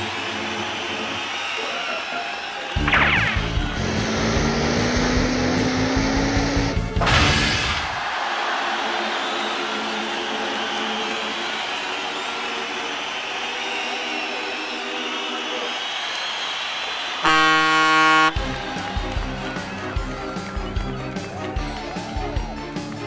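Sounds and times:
crowd roar: 0.0 - 23.0
loud flat horn blast: 17.2 - 18.6
bouncy music: 17.2 - 23.0
soft music: 18.3 - 23.0.

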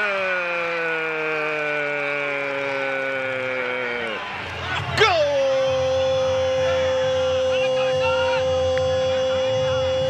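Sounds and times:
commentator shouting: 0.0 - 10.0.

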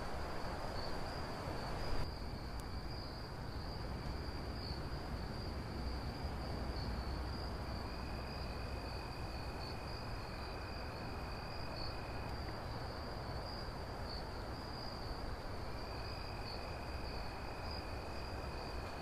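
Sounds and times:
high-pitched insect trill: 0.4 - 19.0.

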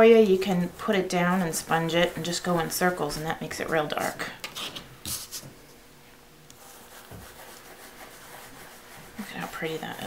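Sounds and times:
sponge rubbing on cardstock: 0.7 - 3.8, 6.6 - 10.0.

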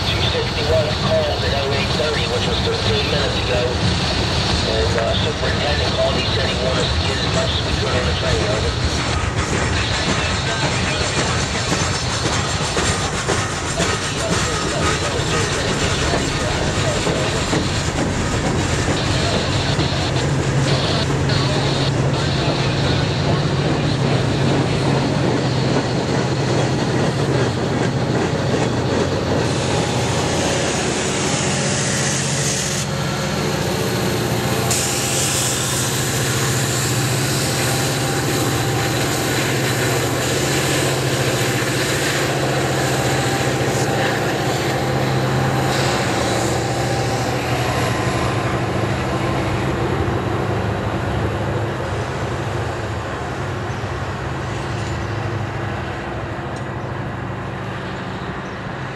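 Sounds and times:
train wheels clattering on rails: 0.0 - 58.0
diesel locomotive rumble: 0.0 - 58.9.

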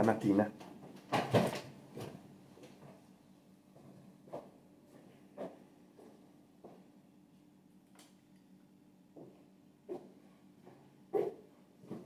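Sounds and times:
faint steady hum: 0.0 - 12.0
chair bump and shuffle: 0.8 - 3.0, 10.7 - 12.0.

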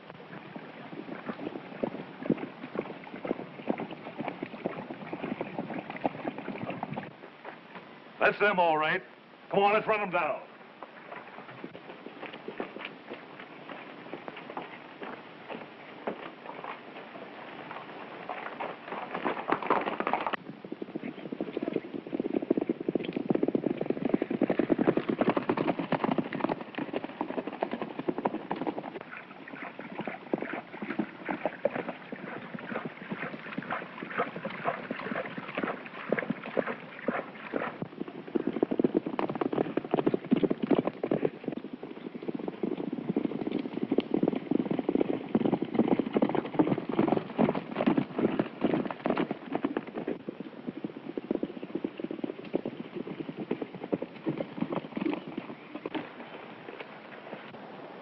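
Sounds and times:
horses galloping hoofbeats: 0.0 - 58.0.

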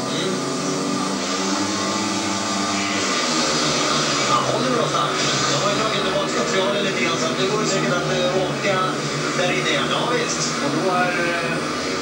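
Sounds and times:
motorbike engines at full throttle: 0.0 - 12.0.

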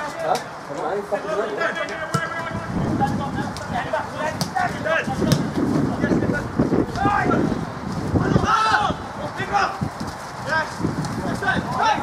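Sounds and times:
wind buffeting microphone: 2.4 - 12.0.

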